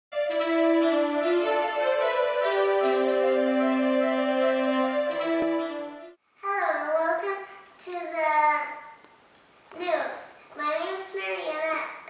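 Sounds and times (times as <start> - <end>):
young girl's voice: 6.4 - 9.0, 9.7 - 12.0.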